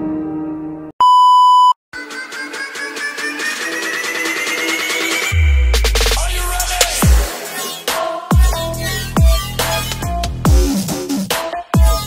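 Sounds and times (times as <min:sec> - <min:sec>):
background music: 0:02.0 - 0:12.0.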